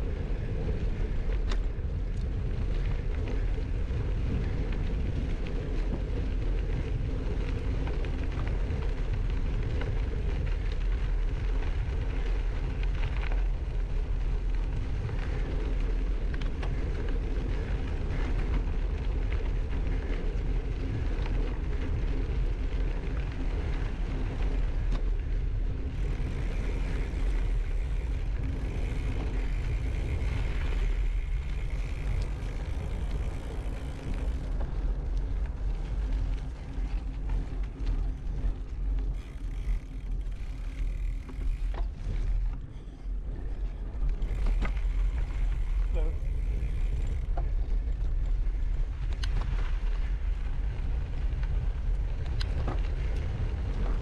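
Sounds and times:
bike tyres rolling on gravel: 0.0s - 54.0s
wind rumble on microphone: 0.0s - 54.0s.

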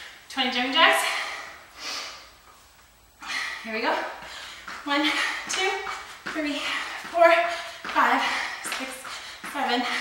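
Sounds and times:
woman breathing through nose: 1.1s - 2.3s.

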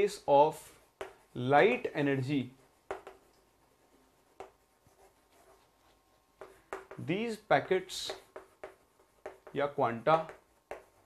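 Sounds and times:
chalk scratching on chalkboard: 0.1s - 11.0s
chalk tap: 0.7s - 1.4s, 2.6s - 11.0s.

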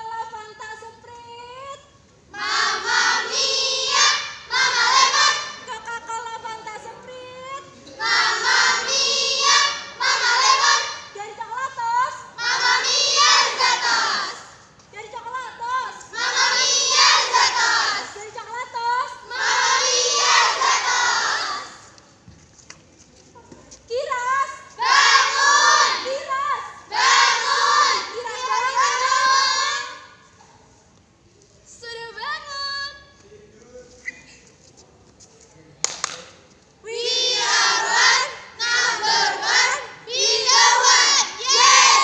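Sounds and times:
young women chanting a cheer: 2.3s - 5.8s, 8.0s - 14.5s, 15.4s - 21.9s, 24.0s - 30.2s, 36.9s - 42.0s.

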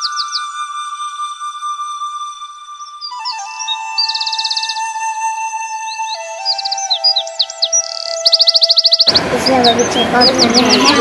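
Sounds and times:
birds chirping and trilling: 0.0s - 11.0s
soft background music: 0.0s - 11.0s
noisy sound with voice: 9.1s - 11.0s.

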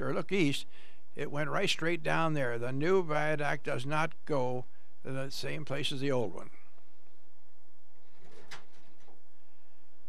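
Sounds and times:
tape hiss and hum: 0.0s - 10.0s.

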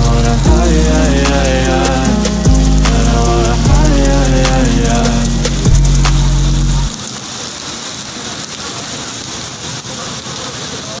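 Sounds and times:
pop song with heavy bass: 0.0s - 6.9s
heavy rain on wet pavement: 0.0s - 11.0s.

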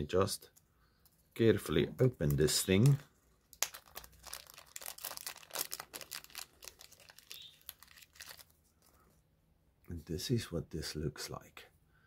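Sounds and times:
plastic bag crinkling: 2.2s - 9.0s.

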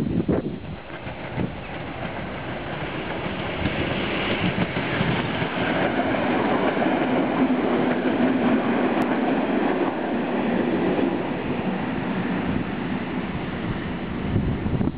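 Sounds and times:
train wheels on rails: 0.0s - 14.9s.

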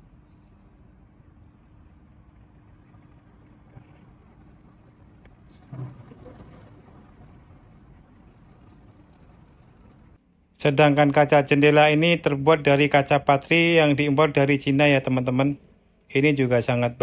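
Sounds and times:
faint steady hum: 0.0s - 17.0s
low room rumble: 0.0s - 17.0s.

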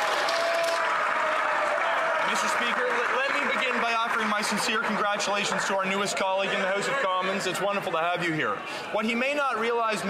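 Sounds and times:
crowd applauding: 0.0s - 8.0s.

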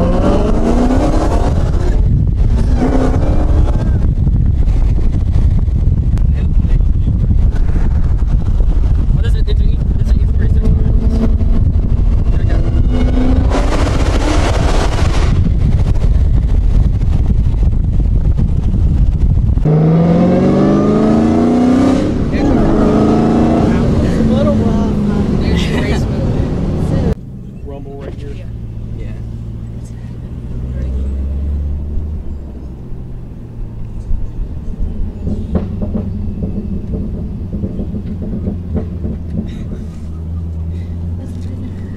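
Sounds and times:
car engine revving: 0.0s - 41.9s
wind and road noise: 0.0s - 41.9s.

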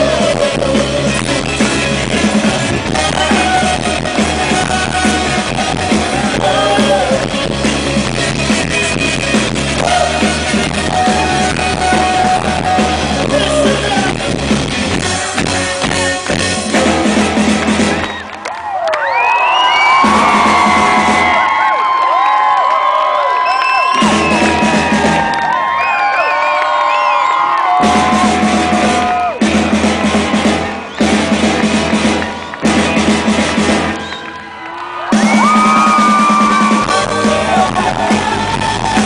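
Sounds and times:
live rock band with horns: 0.0s - 18.4s, 19.6s - 21.7s, 23.6s - 39.0s
crowd cheering and whooping: 17.6s - 39.0s.

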